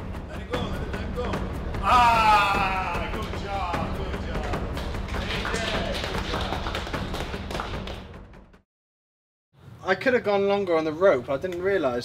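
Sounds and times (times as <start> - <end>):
background music with steady bass: 0.0 - 8.6
indistinct voices calling out: 1.0 - 4.6.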